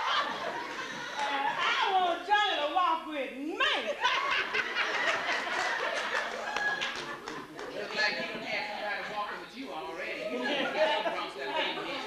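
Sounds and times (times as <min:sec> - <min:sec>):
audience laughing: 0:03.9 - 0:07.7.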